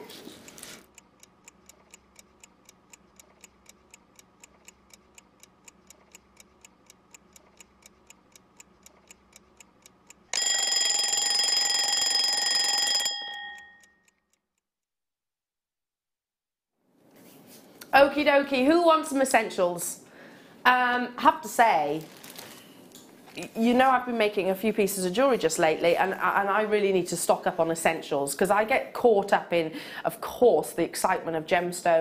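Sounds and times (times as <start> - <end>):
alarm clock ticking: 0.9 - 14.4
alarm bell ringing: 10.4 - 14.1.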